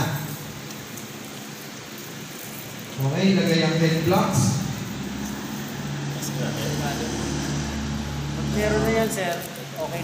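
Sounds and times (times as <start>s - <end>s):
large hall room noise: 0.0s - 10.0s.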